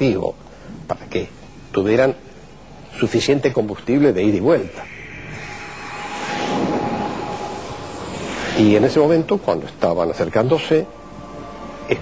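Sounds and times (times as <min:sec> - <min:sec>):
engine rushing hiss and whine: 0:04.7 - 0:10.1.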